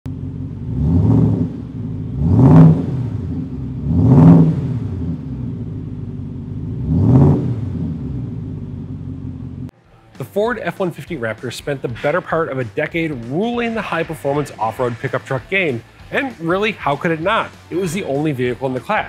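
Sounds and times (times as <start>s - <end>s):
car engine idling and revving: 0.0s - 9.8s.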